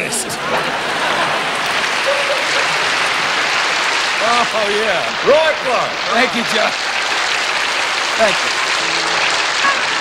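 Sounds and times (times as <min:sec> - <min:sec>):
audience applauding: 0:00.6 - 0:10.0.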